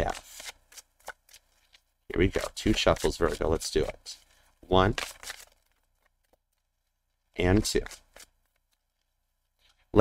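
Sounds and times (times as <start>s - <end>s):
cards being shuffled: 0.0s - 4.2s, 4.8s - 9.8s.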